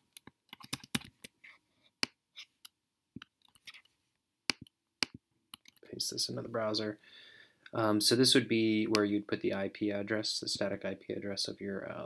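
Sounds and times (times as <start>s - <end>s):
computer keyboard keys clicking: 0.2s - 1.1s.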